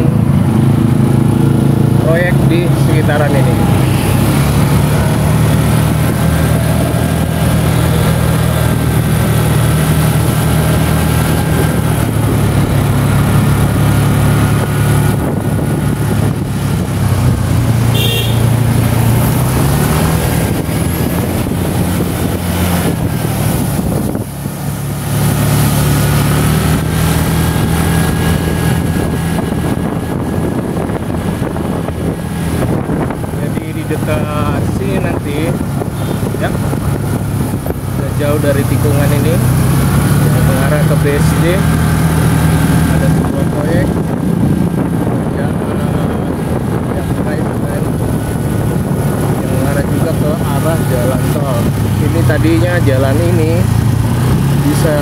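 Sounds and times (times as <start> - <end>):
motorcycle engine revving: 0.0 - 55.0.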